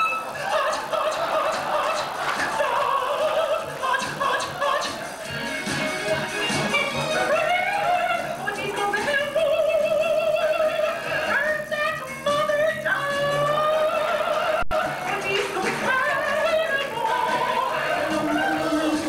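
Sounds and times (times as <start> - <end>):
stage music: 0.0 - 19.0
person singing operatically: 0.1 - 19.0.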